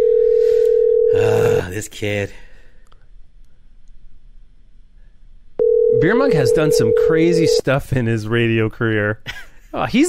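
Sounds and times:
telephone ringback tone: 0.0s - 1.2s, 5.6s - 7.6s.

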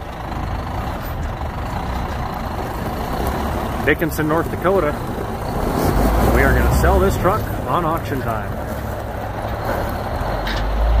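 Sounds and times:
diesel truck engine rumble: 0.0s - 11.0s.

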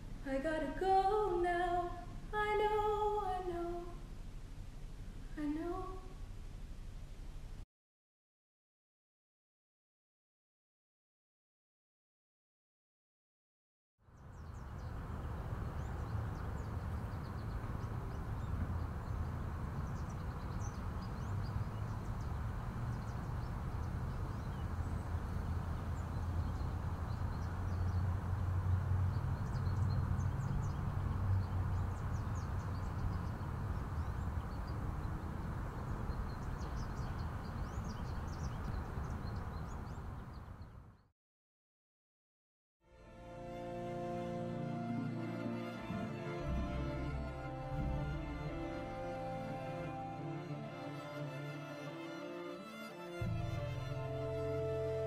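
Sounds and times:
wind rumbling on microphone: 14.2s - 41.0s.

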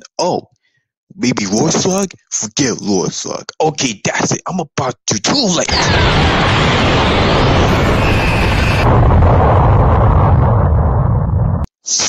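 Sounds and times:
cartoon energy beam blast: 5.7s - 9.5s.

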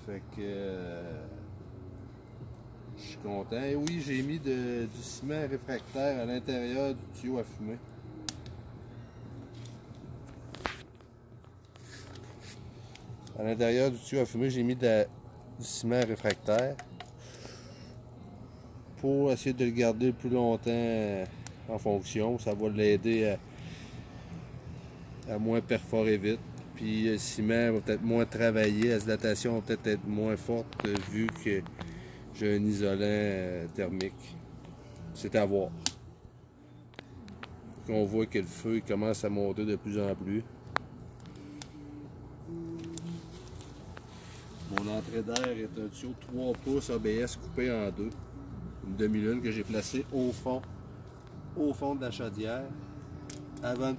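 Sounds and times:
wood fire burning: 0.0s - 53.9s.

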